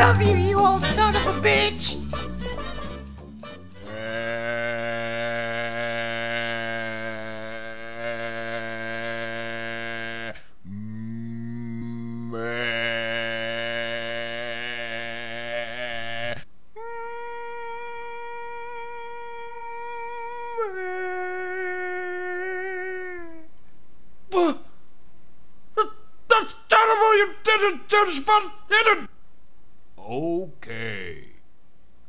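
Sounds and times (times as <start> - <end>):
low voice humming: 3.8 - 23.6.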